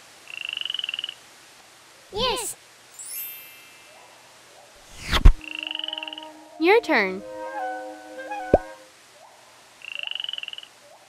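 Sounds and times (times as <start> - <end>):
frog trilling: 5.4 - 6.4, 9.8 - 10.7.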